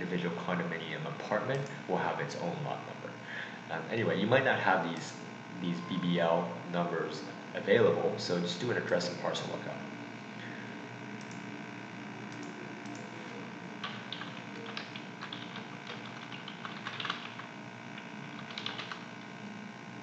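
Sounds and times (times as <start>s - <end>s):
faint steady hum: 0.0s - 20.0s
computer keyboard typing: 13.8s - 19.1s.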